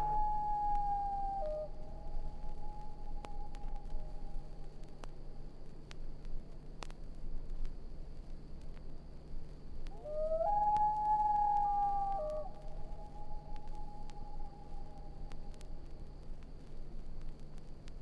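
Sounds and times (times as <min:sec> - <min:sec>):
loon wailing call: 0:00.0 - 0:04.5, 0:09.9 - 0:15.7
low hum: 0:00.0 - 0:18.0.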